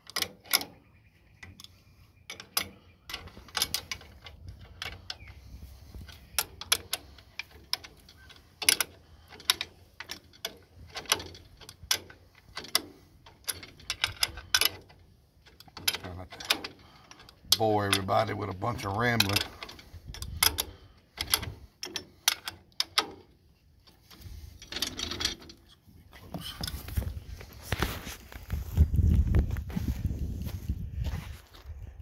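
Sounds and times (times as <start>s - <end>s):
wrench clinking on metal bolt: 0.0s - 0.8s, 2.3s - 5.4s, 6.0s - 23.3s.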